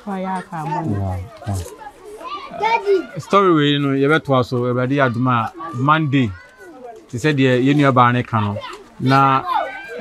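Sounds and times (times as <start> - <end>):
children chattering and calling out: 0.0 - 10.0
adult speaking: 0.8 - 1.6.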